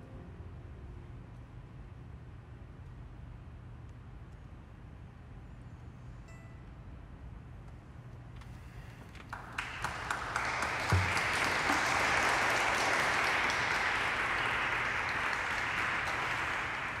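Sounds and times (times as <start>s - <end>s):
applause: 9.1s - 17.0s.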